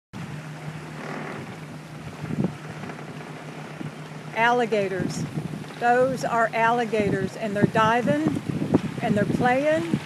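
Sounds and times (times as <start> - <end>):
boat engine hum: 0.2 - 10.0
choppy water: 0.2 - 10.0
wind on microphone: 0.2 - 10.0.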